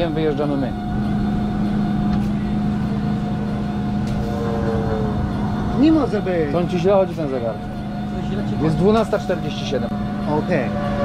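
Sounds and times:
engine hum: 0:00.0 - 0:11.0
second engine note gliding down: 0:04.0 - 0:06.8.

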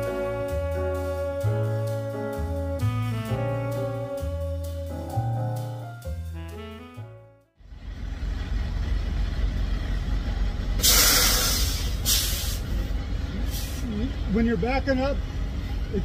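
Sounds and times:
jazz music with saxophone: 0:00.0 - 0:07.5
truck engine idling: 0:00.0 - 0:16.0
short loud hisses: 0:10.8 - 0:12.7.

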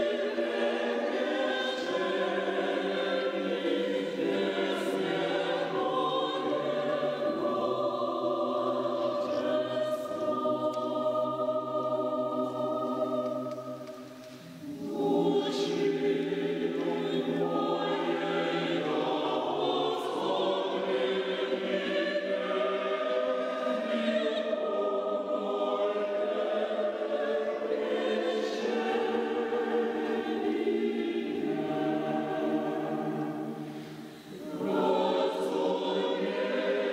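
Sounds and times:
mixed choir singing: 0:00.0 - 0:36.9.

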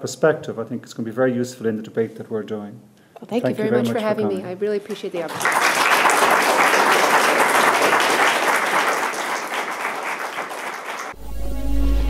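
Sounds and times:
audience applause: 0:05.3 - 0:11.2.

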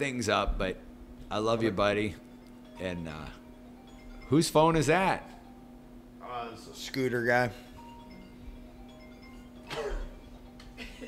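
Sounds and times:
marimba ringtone: 0:01.9 - 0:11.0.

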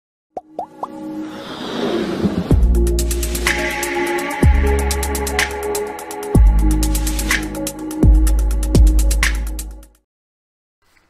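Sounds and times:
electronic intro music: 0:00.6 - 0:09.2.

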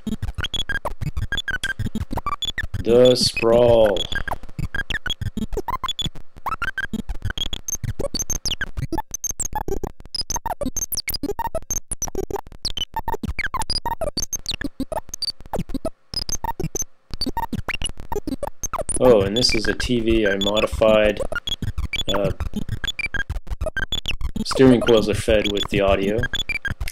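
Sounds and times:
synthesizer clicks and tones: 0:14.3 - 0:26.9.

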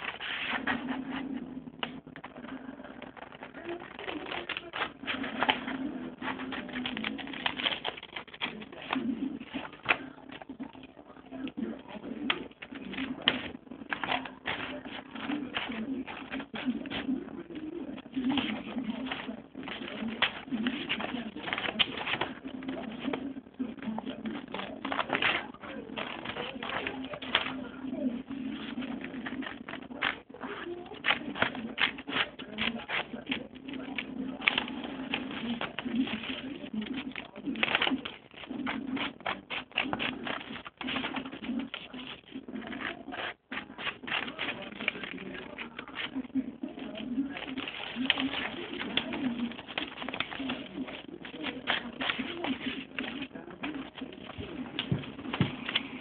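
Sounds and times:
scissors snipping paper: 0:00.0 - 0:56.0.

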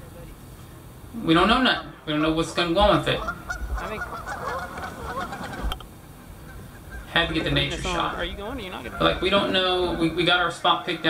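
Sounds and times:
geese honking: 0:01.4 - 0:11.0.

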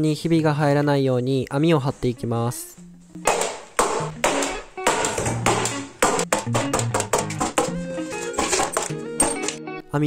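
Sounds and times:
background music with a beat: 0:02.8 - 0:09.6.

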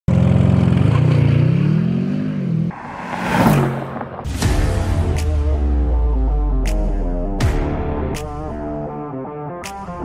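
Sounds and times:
rushing swell: 0:02.7 - 0:04.8.

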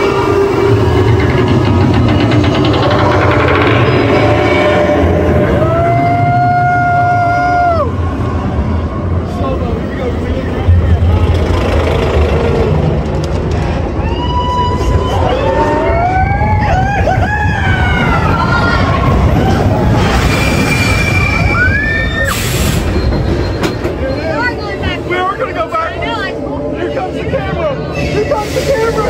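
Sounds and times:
roller coaster train rumbling on track: 0:00.0 - 0:29.0.

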